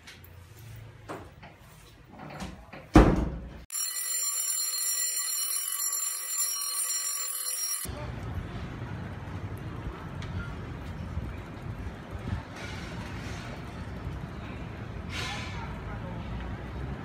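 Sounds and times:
high-pitched electronic ringing: 3.7 - 7.9
low outdoor background rumble: 7.9 - 17.0.

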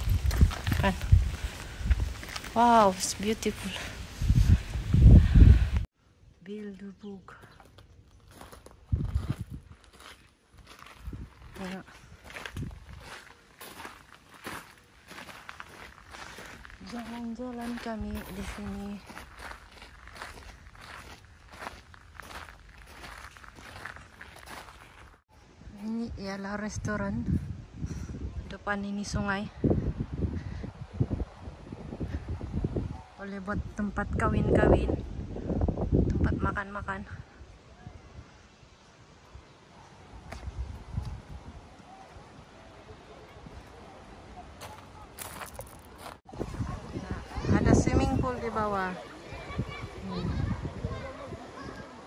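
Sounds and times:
footsteps on gravel: 0.0 - 4.3, 7.4 - 25.2, 44.4 - 47.5
wind rumble on microphone: 0.0 - 5.9, 8.8 - 9.9, 10.6 - 13.2, 25.6 - 38.4, 40.2 - 42.5, 46.0 - 51.9.

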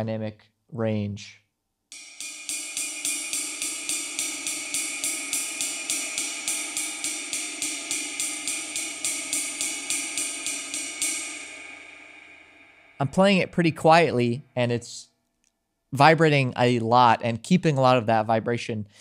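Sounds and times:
ride cymbal played with drumstick: 1.9 - 14.1.

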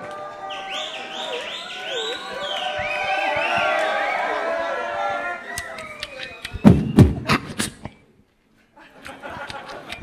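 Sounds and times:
beatboxing into a microphone: 6.1 - 8.0.

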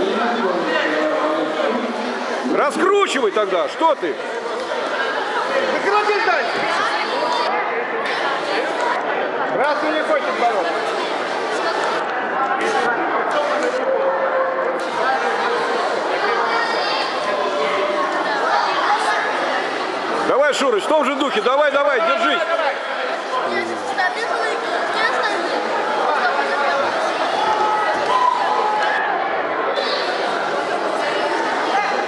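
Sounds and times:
chatter of many voices: 0.0 - 32.0.

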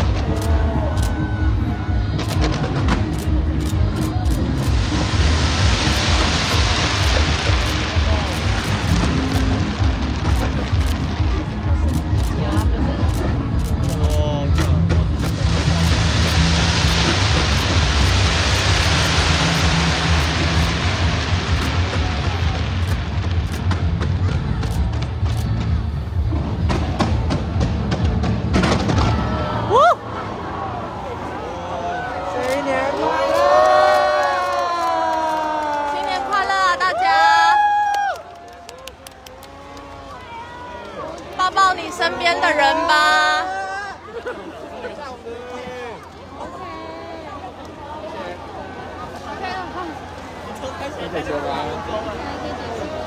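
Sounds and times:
music playing: 0.0 - 29.6
fireworks crackling: 2.2 - 29.8
sharp fireworks bangs: 4.5 - 12.2, 14.6 - 29.5
fireworks booming: 4.6 - 12.2, 14.7 - 29.6.

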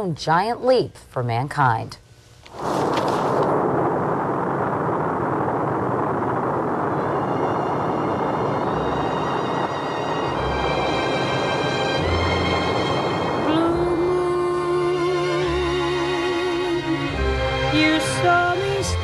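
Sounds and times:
rocket engines roaring: 2.5 - 18.1
music with long held notes: 7.1 - 19.0.

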